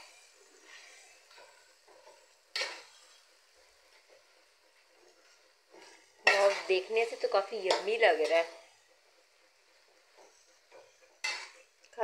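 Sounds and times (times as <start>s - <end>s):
faint sizzle: 0.0s - 12.0s
spoon scraping in a pan: 0.0s - 12.0s
spoon clanking on pan: 1.3s - 3.1s, 5.8s - 8.5s, 10.0s - 12.0s.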